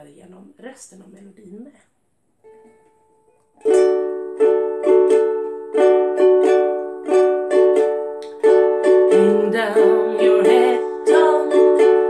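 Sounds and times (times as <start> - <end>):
ukulele strumming: 2.4 - 12.0.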